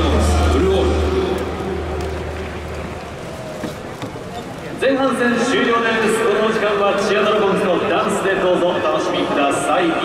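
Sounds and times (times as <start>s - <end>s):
crowd and room noise: 0.0s - 10.0s
low hum from loudspeakers: 0.0s - 10.0s.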